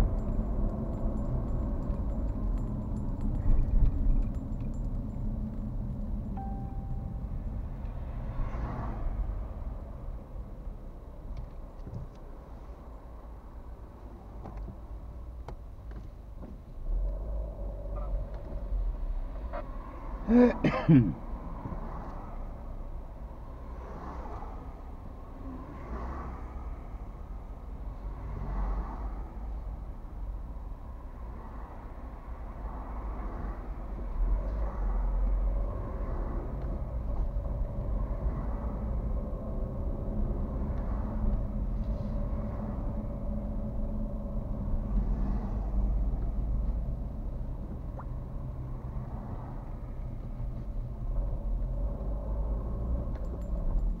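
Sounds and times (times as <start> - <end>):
car engine and tyre rumble: 0.0 - 54.0
passing traffic: 0.0 - 54.0.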